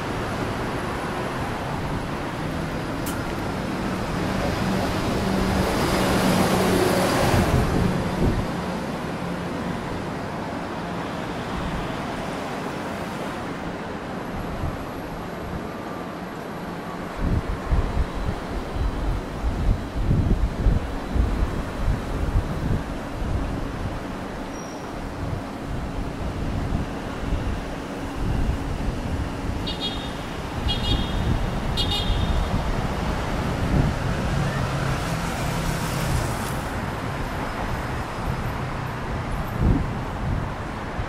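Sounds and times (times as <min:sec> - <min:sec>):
cars passing: 0:00.0 - 0:24.5, 0:25.1 - 0:41.0
wind on microphone: 0:04.0 - 0:08.7, 0:17.1 - 0:24.4, 0:25.0 - 0:38.0, 0:39.0 - 0:41.0.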